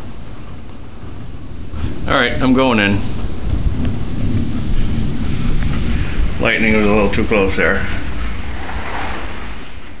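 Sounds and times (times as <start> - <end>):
heavy rain: 0.0 - 10.0
thunder rumbling: 0.0 - 10.0.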